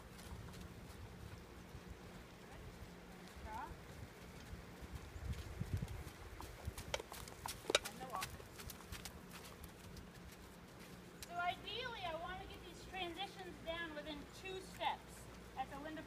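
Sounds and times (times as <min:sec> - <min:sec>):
horse hooves trotting on gravel: 0:00.0 - 0:16.0.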